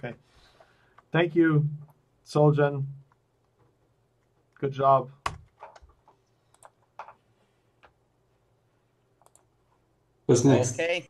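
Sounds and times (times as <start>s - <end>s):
faint computer clicks: 5.2s - 7.2s, 9.2s - 9.5s.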